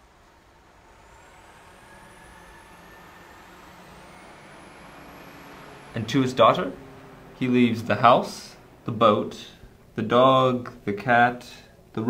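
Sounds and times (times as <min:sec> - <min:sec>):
faint road traffic: 0:00.0 - 0:12.0
thin rising whine: 0:00.0 - 0:12.0
vehicle engine: 0:00.0 - 0:12.0.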